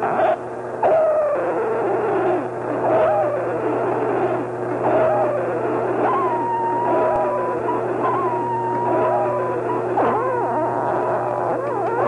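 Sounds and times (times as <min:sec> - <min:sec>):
low electronic drone: 0:00.0 - 0:12.0
wailing voice-like tone gliding down: 0:00.9 - 0:12.0.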